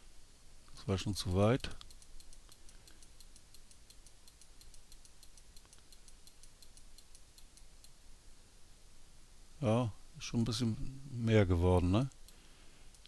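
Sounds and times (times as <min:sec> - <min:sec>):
mouse scroll wheel ticking: 0:01.6 - 0:08.0.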